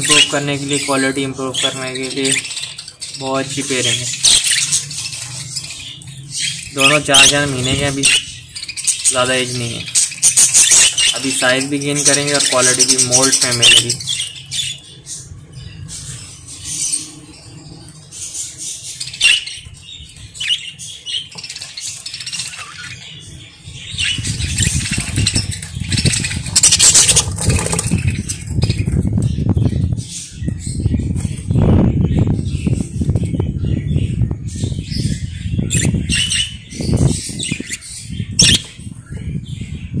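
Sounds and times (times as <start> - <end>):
budgerigars chirping: 0.0 - 40.0.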